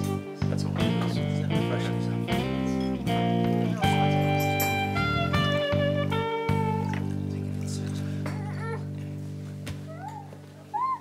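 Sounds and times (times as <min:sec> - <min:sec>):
held music chord: 0:00.0 - 0:09.6
infant cooing: 0:08.2 - 0:09.0, 0:09.8 - 0:11.0.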